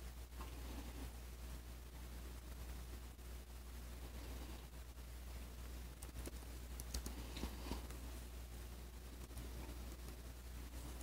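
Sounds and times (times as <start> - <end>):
low steady hum: 0.0 - 11.0
laptop keyboard clicks: 6.0 - 7.2.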